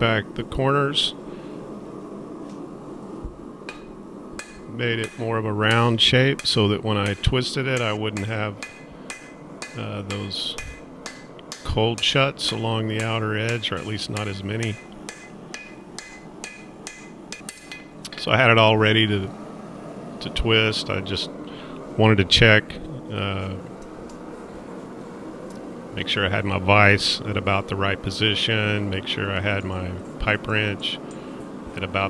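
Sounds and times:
hammer striking metal on anvil: 3.7s - 18.0s.

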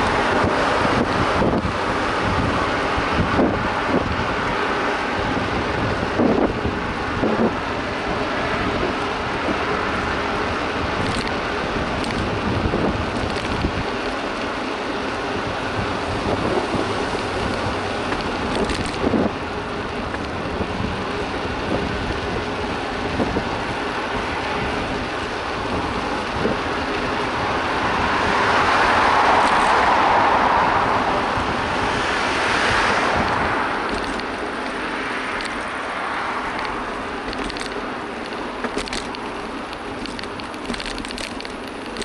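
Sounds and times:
bicycle rattling: 0.0s - 42.0s
tyre and road noise: 0.0s - 42.0s
wind buffeting microphone: 0.0s - 42.0s
rush of noise: 23.0s - 42.0s.

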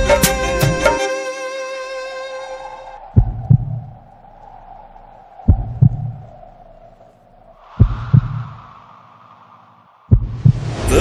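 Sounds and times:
heartbeat thumps: 3.1s - 4.0s, 5.5s - 6.3s, 7.8s - 8.5s, 10.1s - 10.7s.

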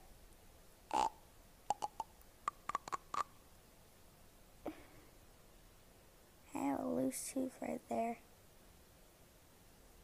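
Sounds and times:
tongue clicks and mouth pops: 0.9s - 3.3s.

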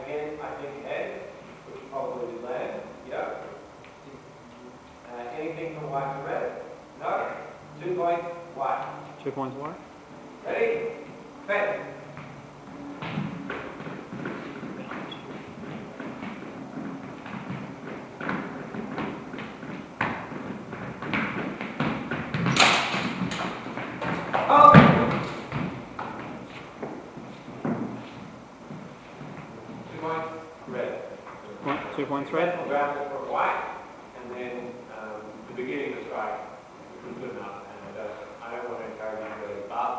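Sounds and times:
footsteps on hard floor: 12.0s - 30.0s
voices: 24.0s - 25.6s.

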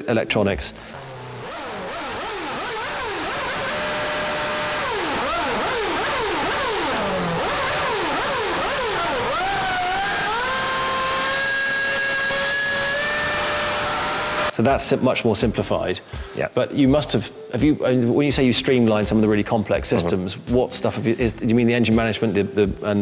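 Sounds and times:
racing engine revving: 1.0s - 14.6s.

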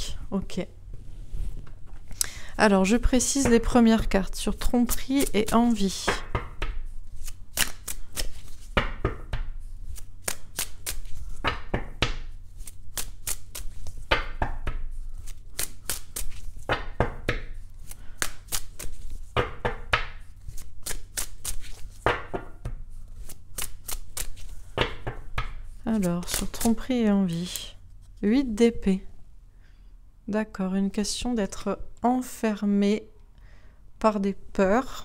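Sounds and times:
cards being shuffled by hand: 4.6s - 28.3s.

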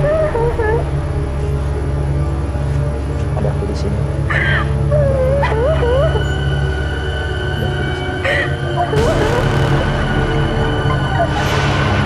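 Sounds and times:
high wavering whimpering cry: 0.0s - 1.2s, 4.1s - 9.3s
low music drone: 0.0s - 12.0s.

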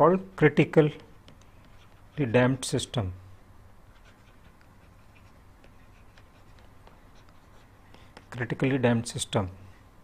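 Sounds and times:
low steady hum: 0.0s - 10.0s
pen scratching on paper: 0.9s - 2.2s, 3.9s - 8.5s.

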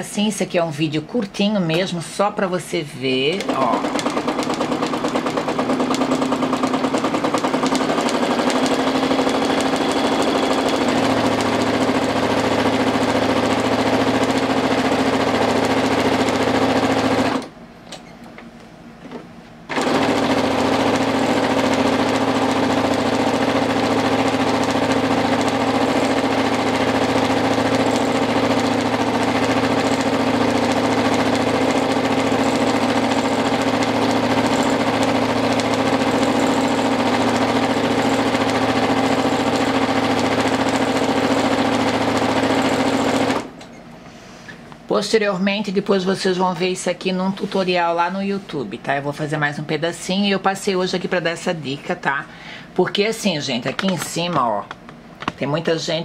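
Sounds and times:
sewing machine running: 3.1s - 17.6s, 19.7s - 43.7s.

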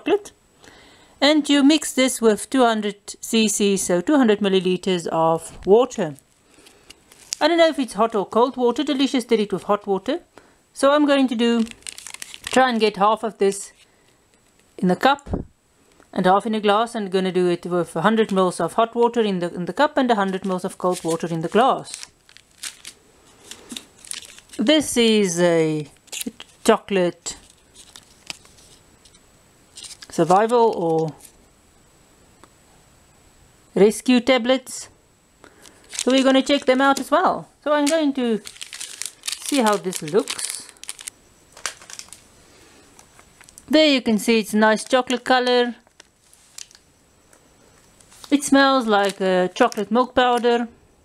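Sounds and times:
foil pouch crinkling: 6.4s - 7.5s, 11.2s - 13.9s, 20.1s - 25.0s, 25.8s - 31.4s, 35.5s - 42.3s, 43.0s - 43.7s, 44.7s - 46.8s, 48.0s - 50.5s
packaging clicks and rustles: 6.5s - 7.4s, 11.5s - 12.6s, 20.3s - 24.8s, 27.4s - 31.4s, 35.5s - 37.2s, 37.8s - 42.3s, 43.0s - 43.7s, 45.8s - 46.8s, 48.0s - 50.5s.

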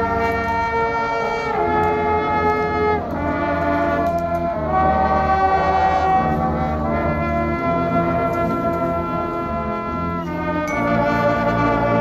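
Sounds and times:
marching band brass chords: 0.0s - 12.0s.

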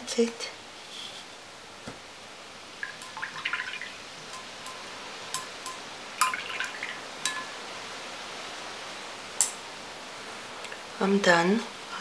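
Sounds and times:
water splashing in a jar: 2.8s - 4.0s, 6.2s - 7.0s.

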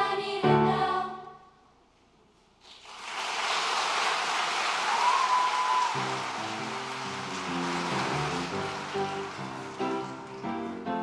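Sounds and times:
choir singing: 0.0s - 1.5s
audience applause: 2.7s - 10.8s
grand piano playing: 6.0s - 11.0s.

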